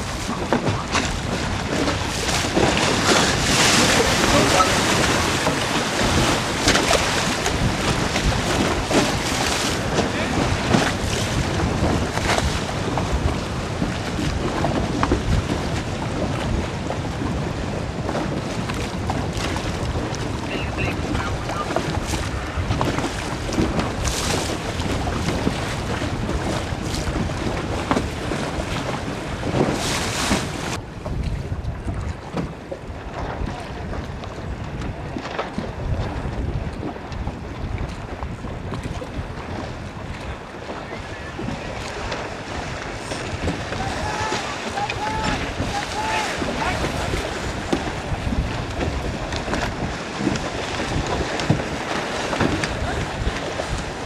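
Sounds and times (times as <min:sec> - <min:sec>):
choppy water slapping: 0:00.0 - 0:54.0
wind buffeting microphone: 0:00.0 - 0:54.0.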